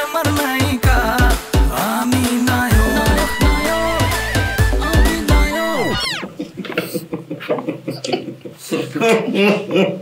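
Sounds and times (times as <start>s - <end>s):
music cue: 2.6s - 6.3s
falling pitch sweep: 2.7s - 6.5s
man chuckling: 6.3s - 10.0s.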